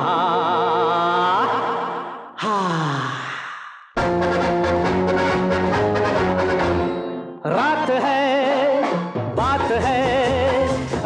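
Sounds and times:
band music: 4.0s - 11.0s.

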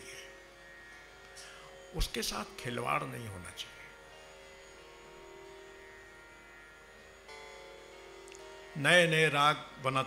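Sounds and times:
tanpura drone: 0.0s - 10.0s.

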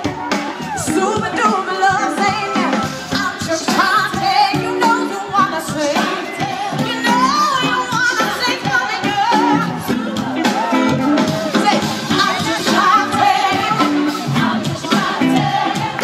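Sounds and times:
live band playing soul-pop: 0.0s - 16.0s
woman singing lead: 0.0s - 16.0s.

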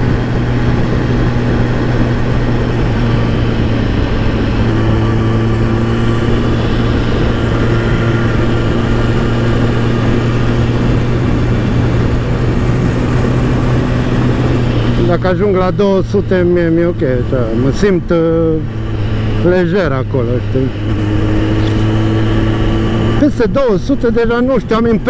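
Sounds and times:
motorcycle engine cruising: 0.0s - 25.0s
wind noise: 0.0s - 25.0s.

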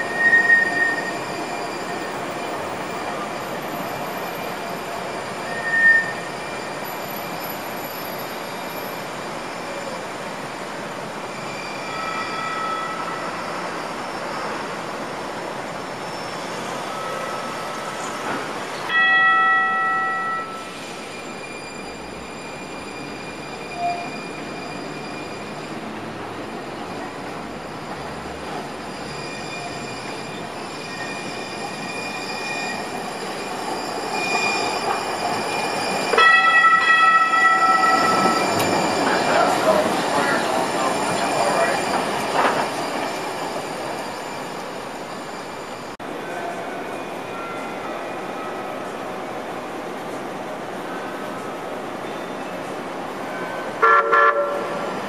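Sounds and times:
steel wheels squealing: 0.0s - 46.0s, 46.6s - 55.0s
tram passing by: 0.0s - 55.0s
tram horn blasts: 36.2s - 38.4s, 53.4s - 54.9s.

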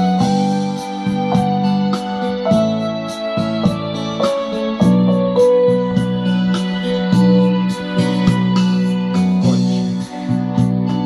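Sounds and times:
electric piano chords and melody: 0.0s - 11.0s
ticking hi-hat beat: 0.0s - 11.0s.

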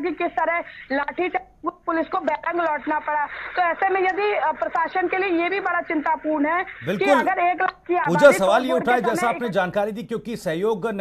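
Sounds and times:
woman talking over video call: 0.0s - 9.4s.

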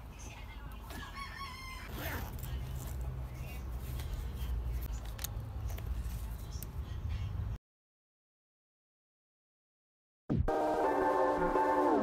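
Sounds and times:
rooster crowing: 1.1s - 2.0s.

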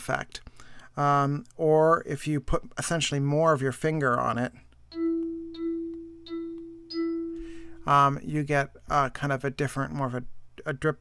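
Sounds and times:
synthesized pad tone: 4.9s - 7.7s.

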